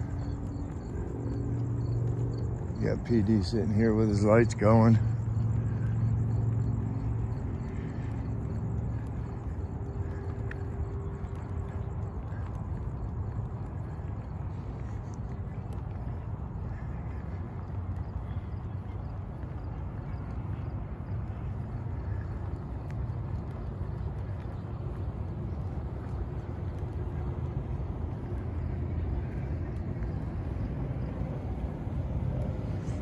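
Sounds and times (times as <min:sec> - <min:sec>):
faint ticks: 0:00.0 - 0:31.4.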